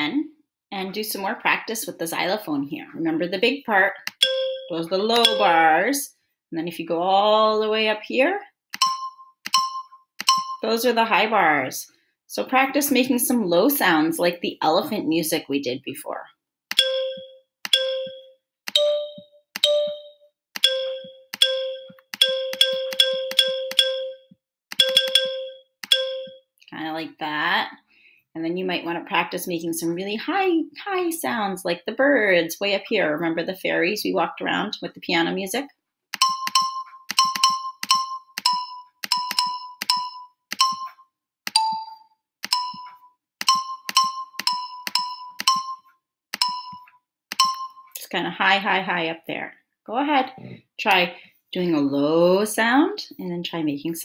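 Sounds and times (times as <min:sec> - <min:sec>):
xylophone notes: 0:04.1 - 0:05.8, 0:08.8 - 0:10.8, 0:16.7 - 0:26.4, 0:36.2 - 0:48.0.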